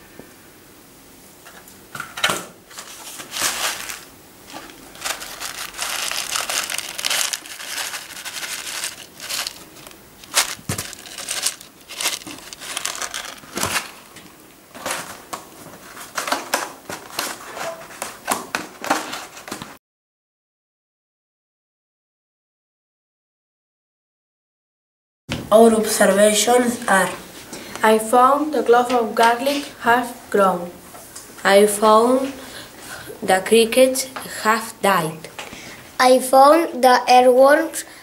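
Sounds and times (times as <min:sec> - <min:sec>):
rustling and crackling handling: 0:02.7 - 0:19.8.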